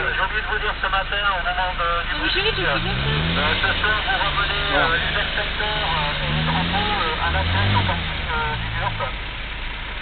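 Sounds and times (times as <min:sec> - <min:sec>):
engine rumbling: 0:00.0 - 0:10.0.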